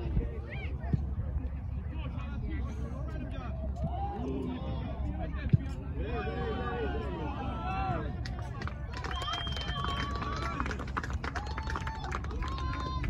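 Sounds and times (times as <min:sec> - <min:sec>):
constant low rumble: 0:00.0 - 0:13.0.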